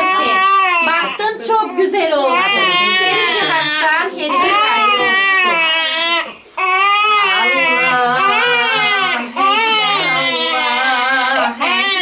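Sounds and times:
newborn baby crying: 0:00.0 - 0:12.0.

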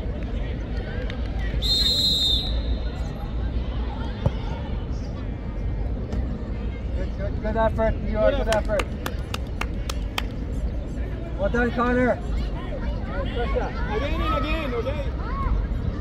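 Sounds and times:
spectators' voices: 0:00.0 - 0:16.0
referee whistle: 0:01.6 - 0:02.9.

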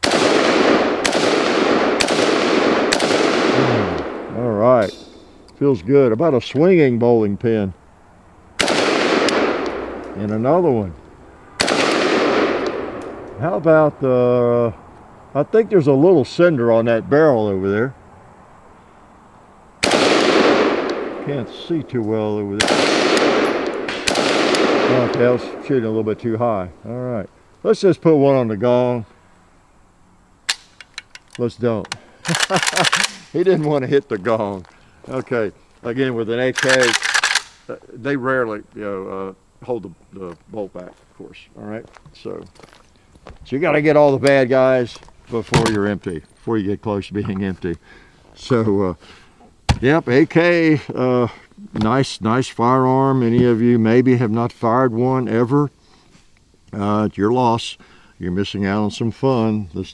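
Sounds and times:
rifle shots with echo: 0:00.0 - 0:04.4, 0:08.6 - 0:10.2, 0:11.6 - 0:13.3, 0:19.8 - 0:21.7, 0:22.5 - 0:26.0.

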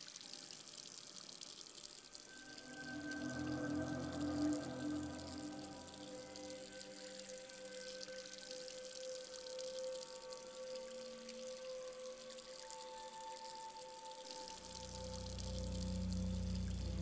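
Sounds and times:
faint watery hiss: 0:00.0 - 0:17.0
ambient drone music: 0:02.2 - 0:17.0.

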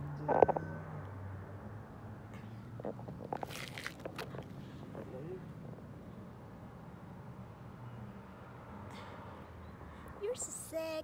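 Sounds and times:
small clicks and rustles: 0:02.8 - 0:05.1.

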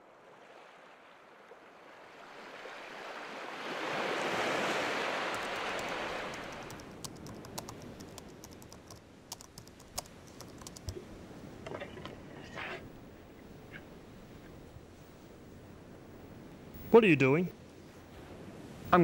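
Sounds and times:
surf-like rushing noise: 0:01.9 - 0:08.2
typing on a laptop keyboard: 0:05.3 - 0:11.0.

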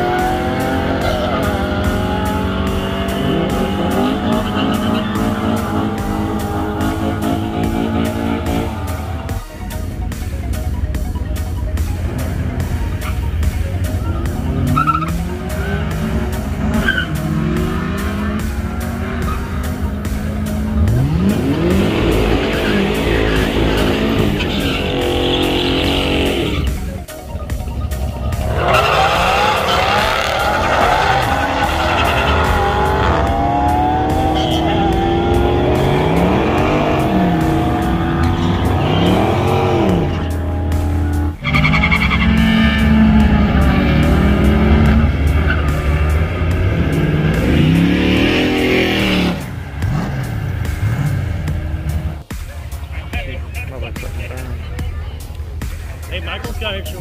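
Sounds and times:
race cars accelerating: 0:00.0 - 0:57.0
tyre squeal: 0:14.6 - 0:15.9, 0:16.7 - 0:17.3, 0:41.4 - 0:44.1.

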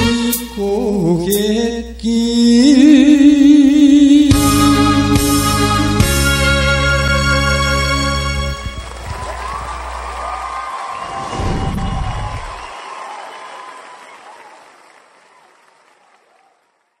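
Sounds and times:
audience applauding and cheering: 0:07.9 - 0:17.0
whoops: 0:08.7 - 0:16.7
deep low rumble: 0:11.1 - 0:12.7.

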